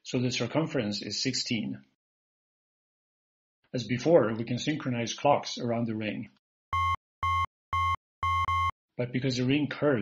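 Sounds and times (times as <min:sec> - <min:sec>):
synthesized electronic beeps: 0:06.7 - 0:08.8.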